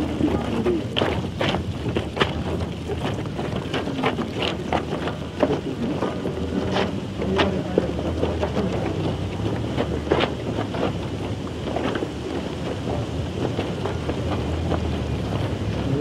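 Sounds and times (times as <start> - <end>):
knocks and clatters from crowd: 0.0 - 16.0
wind noise on microphone: 0.0 - 16.0.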